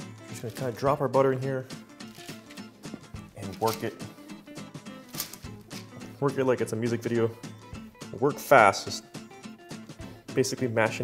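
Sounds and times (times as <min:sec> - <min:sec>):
background music with light beat: 0:00.0 - 0:11.0.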